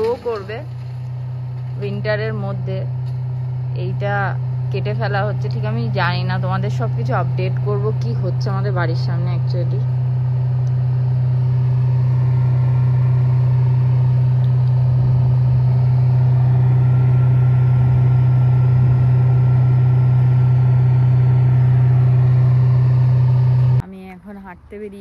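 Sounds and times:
wood chipper engine droning: 0.0 - 23.8.

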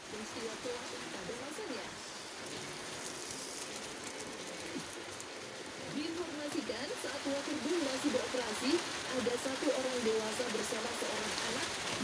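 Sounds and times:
hiss with fine crackle: 0.0 - 12.0
television voices: 0.0 - 12.0.

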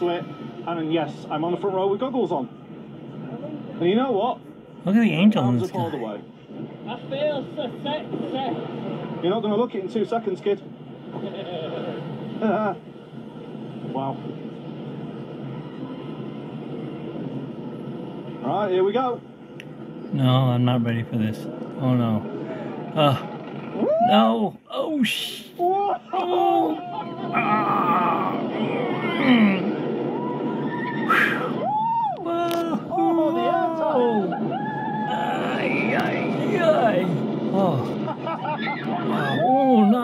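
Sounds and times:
roller coaster mechanical running: 0.0 - 40.0
rush of wind and train noise: 0.0 - 40.0
riders screaming and yelling: 22.5 - 24.5, 25.6 - 40.0.

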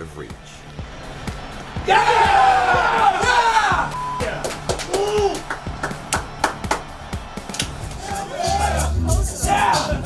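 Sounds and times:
music with bass and percussive beat: 0.3 - 10.0.

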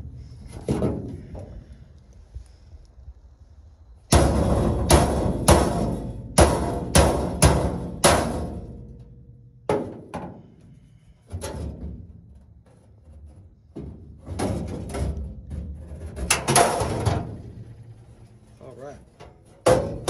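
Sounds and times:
metal panel clanking and banging: 0.5 - 1.5, 4.1 - 10.6, 11.3 - 17.7, 19.2 - 20.0.

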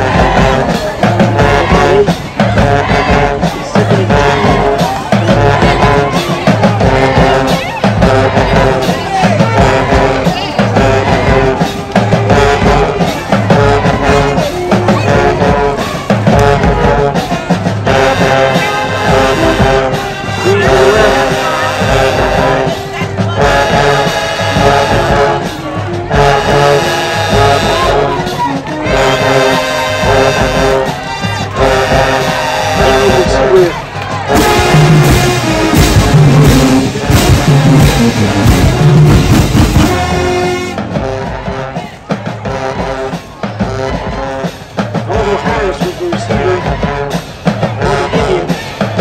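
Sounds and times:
low horns: 0.0 - 49.0
marching band brass: 0.0 - 49.0
percussion hits: 0.0 - 49.0.

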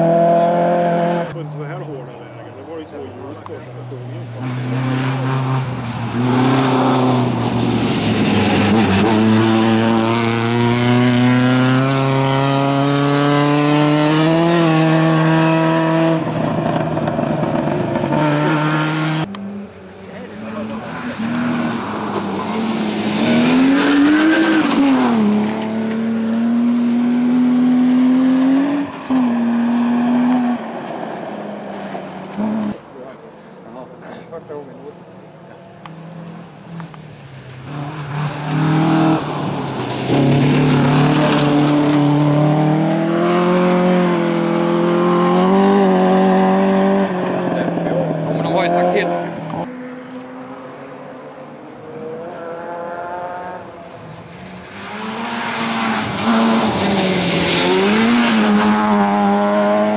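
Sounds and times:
rally car engine accelerating: 0.0 - 2.0, 3.3 - 32.8, 35.8 - 50.8, 51.7 - 59.9.

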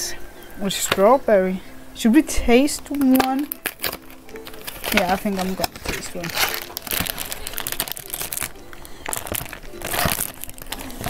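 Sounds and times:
plastic wrapper crinkling: 2.7 - 11.0.

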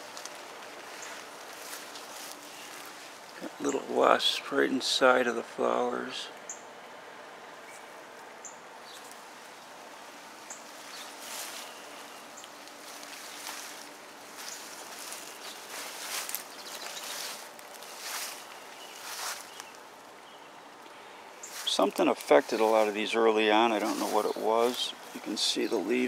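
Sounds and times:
plants rustling when brushed: 0.0 - 4.3, 8.9 - 20.0, 21.4 - 26.0.

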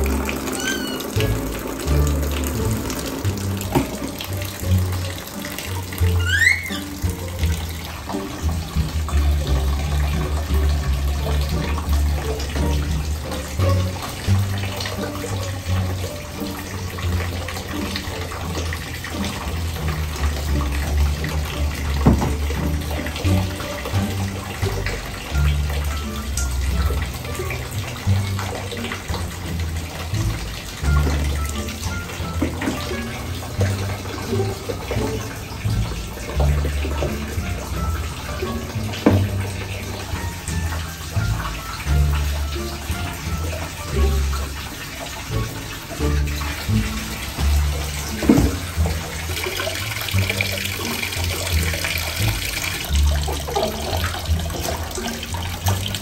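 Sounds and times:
water running into plastic basin: 0.0 - 56.0.

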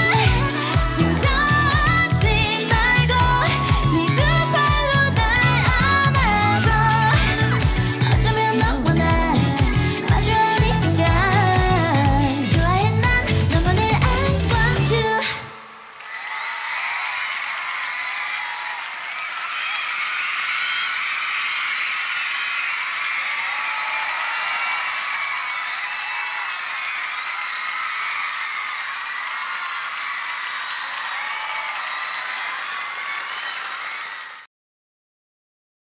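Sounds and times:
audience cheering and screaming: 0.0 - 34.5
applause: 15.8 - 34.5.

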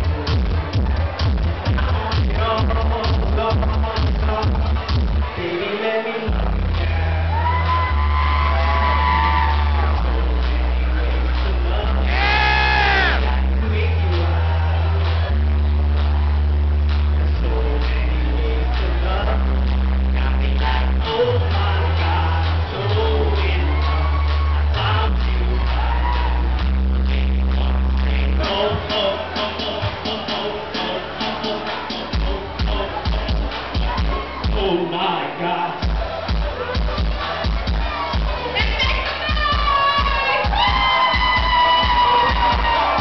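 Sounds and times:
heavy bass line: 0.0 - 5.6, 6.2 - 43.0
live dance music over loudspeakers: 0.0 - 43.0
sliding vocal notes: 17.1 - 43.0.

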